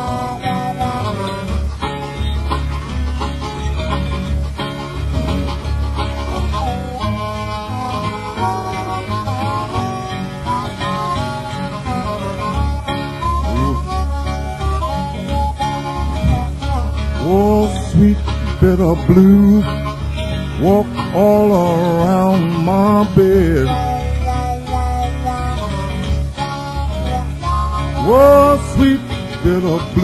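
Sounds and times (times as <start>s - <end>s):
acoustic guitar bass line: 0.0s - 30.0s
harmonica bent notes: 0.0s - 30.0s.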